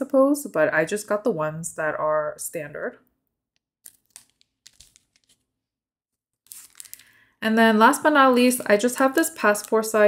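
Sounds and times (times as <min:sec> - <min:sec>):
plastic packaging crinkling: 0:03.9 - 0:05.5, 0:06.4 - 0:07.2.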